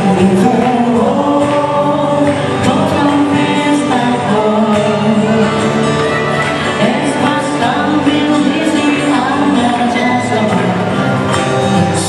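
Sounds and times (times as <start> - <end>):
bluegrass band playing: 0.0 - 12.0
voices singing in harmony: 0.0 - 12.0.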